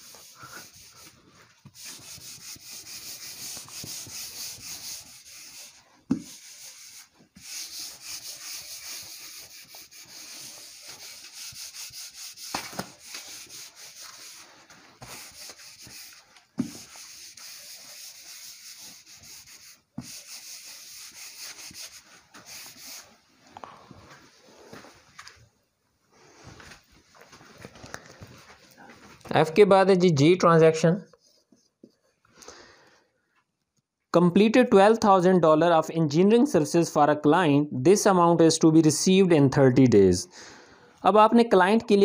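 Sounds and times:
duster rubbing whiteboard: 0:00.0 - 0:23.2.

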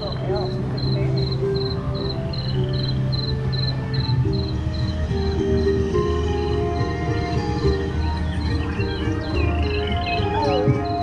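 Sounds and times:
slow low music notes: 0:00.0 - 0:11.0
high cricket-like chirp: 0:00.8 - 0:06.5.

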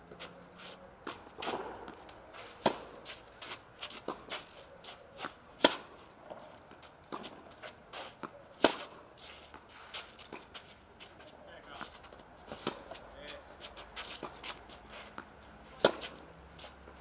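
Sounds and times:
shoes scuffing on clay: 0:00.1 - 0:17.0
tennis ball struck with racket: 0:01.0 - 0:04.4, 0:05.2 - 0:06.5, 0:08.1 - 0:09.6, 0:12.5 - 0:13.0, 0:14.1 - 0:16.3.

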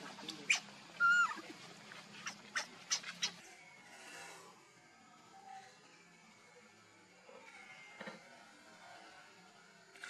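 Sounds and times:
monkey squeaks: 0:00.4 - 0:01.4, 0:02.2 - 0:03.4
baby monkey crying: 0:00.5 - 0:01.4.

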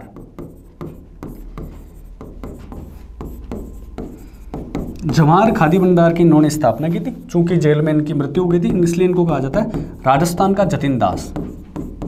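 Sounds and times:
marker pen scratching on board: 0:00.0 - 0:12.0.

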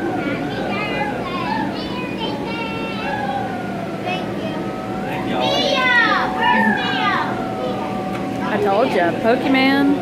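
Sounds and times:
children's excited chatter: 0:00.0 - 0:09.2
steady background hum: 0:00.0 - 0:10.0.

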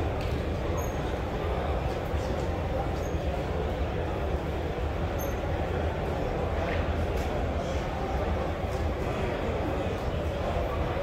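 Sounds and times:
murmur of crowd chatter: 0:00.0 - 0:11.0.

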